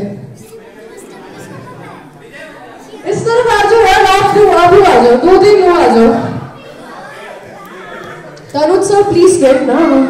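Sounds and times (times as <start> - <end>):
crowd chatter in a hall: 0.0 - 10.0.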